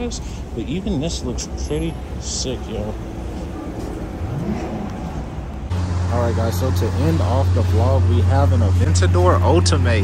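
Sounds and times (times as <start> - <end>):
car engines in slow traffic: 0.0 - 10.0.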